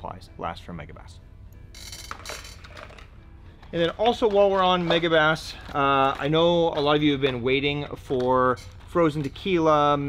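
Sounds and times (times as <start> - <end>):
fishing lures clinking: 1.7 - 3.2
plastic packaging rustling: 2.1 - 9.7.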